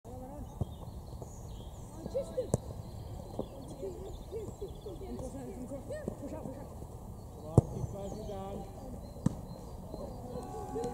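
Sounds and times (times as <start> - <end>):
voices calling: 0.1 - 10.9.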